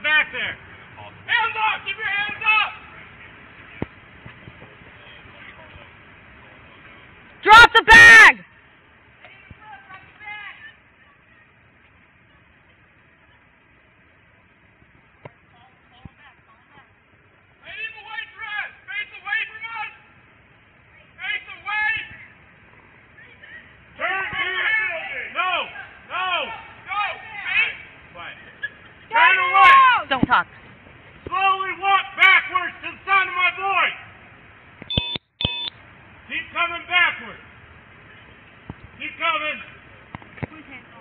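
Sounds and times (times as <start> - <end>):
distant shout: 0.0 - 4.0, 6.8 - 13.5, 17.6 - 30.5, 31.2 - 34.4
faint background hiss: 0.0 - 41.0.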